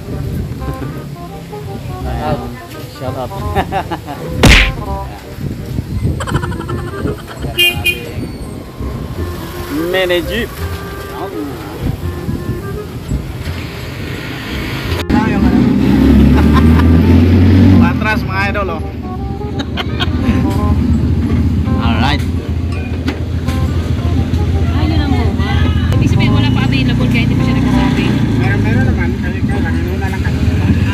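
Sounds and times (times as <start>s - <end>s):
street traffic: 0.0s - 30.9s
vehicle horn toots: 7.6s - 8.6s.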